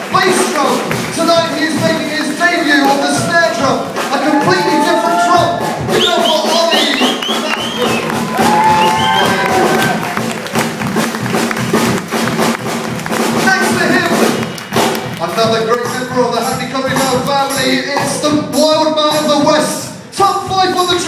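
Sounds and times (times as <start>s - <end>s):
brass band playing: 0.0s - 21.0s.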